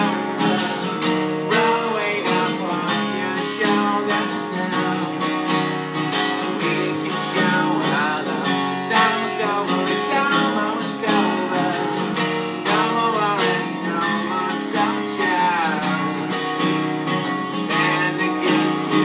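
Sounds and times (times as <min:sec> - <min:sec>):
acoustic guitar strumming: 0:00.0 - 0:19.0
man singing: 0:00.0 - 0:19.0.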